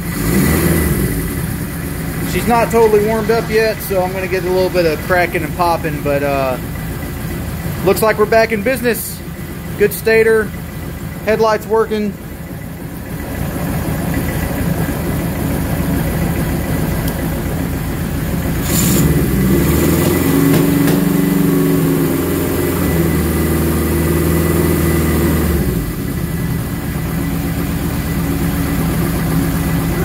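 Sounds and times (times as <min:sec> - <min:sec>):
motorcycle engine idling and revving: 0:00.0 - 0:30.0.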